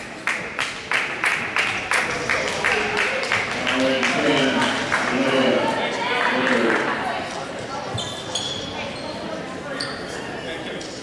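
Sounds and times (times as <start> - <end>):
echoing crowd chatter: 0.0 - 11.0
sneakers squeaking on hardwood: 7.8 - 10.2.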